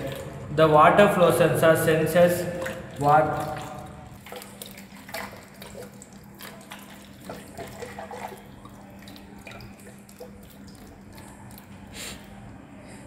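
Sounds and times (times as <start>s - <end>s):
small water splashes: 0.0s - 0.6s, 2.1s - 12.6s
water pouring and trickling: 0.0s - 12.8s.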